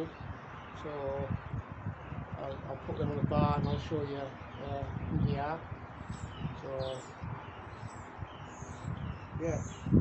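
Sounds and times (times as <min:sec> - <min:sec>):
small birds chirping: 0:00.0 - 0:10.0
wind rumble on microphone: 0:00.0 - 0:10.0.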